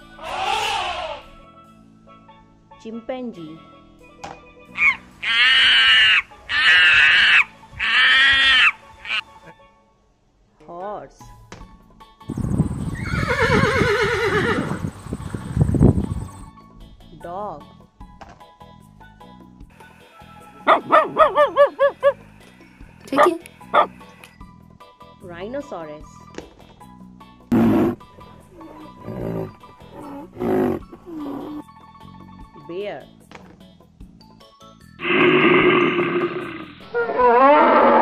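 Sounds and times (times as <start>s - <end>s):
horse whinnying: 0.2s - 1.3s, 12.9s - 14.9s, 27.6s - 31.6s, 35.0s - 38.0s
rough animal call: 0.2s - 1.3s, 4.8s - 9.2s, 20.6s - 22.3s, 23.2s - 24.1s, 27.5s - 31.7s, 35.0s - 38.0s.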